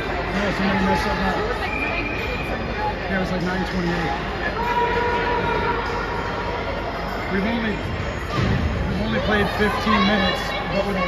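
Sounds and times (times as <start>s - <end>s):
low arena background noise: 0.0s - 11.0s.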